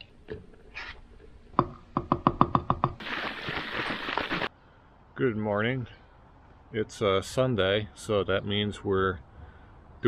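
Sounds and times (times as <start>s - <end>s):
water shaken in bottle: 3.0s - 4.5s.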